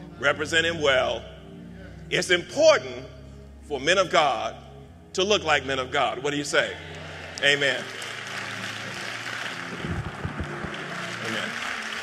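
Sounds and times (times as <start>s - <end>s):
congregation applauding: 6.8s - 12.0s.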